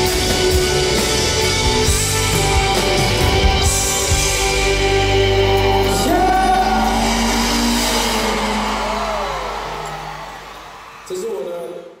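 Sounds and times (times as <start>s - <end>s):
rock band chord ringing: 0.0s - 10.6s
crowd cheering and screaming: 0.0s - 12.0s
live concert song: 0.0s - 12.0s.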